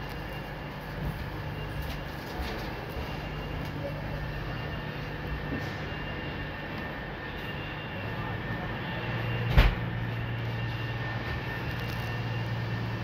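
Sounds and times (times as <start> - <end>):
deeper hum: 0.0 - 13.0
low hum of train equipment: 0.0 - 13.0.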